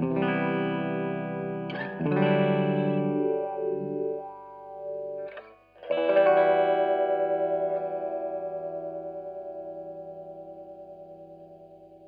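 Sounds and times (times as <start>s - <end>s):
electric guitar chords through filter: 0.0s - 12.0s.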